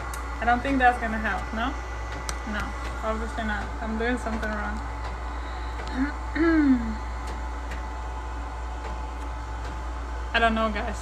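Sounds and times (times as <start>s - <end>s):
low hum of room equipment: 0.0s - 11.0s.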